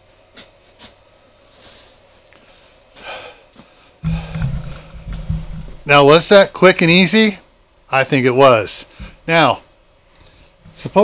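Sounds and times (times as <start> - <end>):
microphone rubbing and knocks: 4.0 - 5.9.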